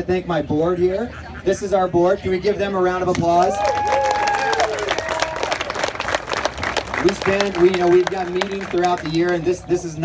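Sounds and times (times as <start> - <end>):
crowd applauding: 3.4 - 9.5.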